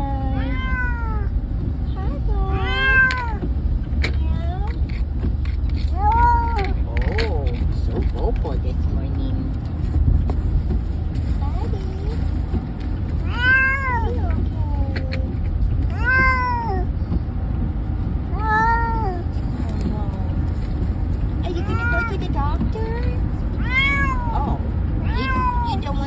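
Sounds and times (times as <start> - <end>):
car rumble: 0.0 - 26.0
cat meowing: 0.3 - 1.3, 2.4 - 3.4, 5.8 - 6.9, 13.2 - 15.2, 15.9 - 16.9, 18.3 - 19.3, 23.6 - 26.0.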